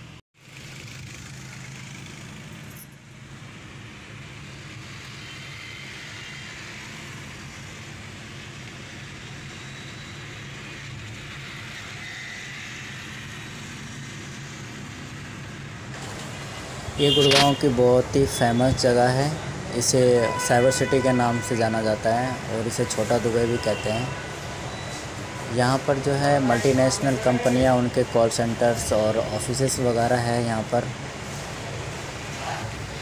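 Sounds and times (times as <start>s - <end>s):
tyres rushing on road: 0.0s - 33.0s.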